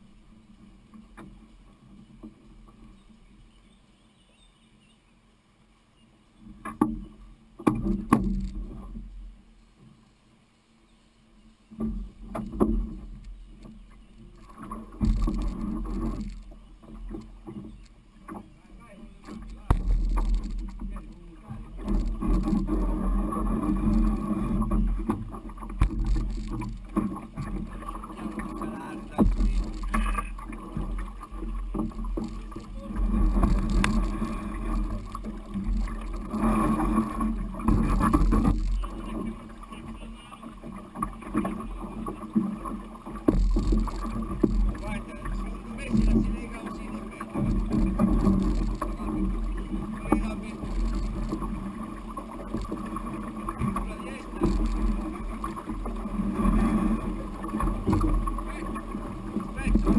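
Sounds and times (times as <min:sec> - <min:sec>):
shallow water running: 0:18.7 - 0:59.9.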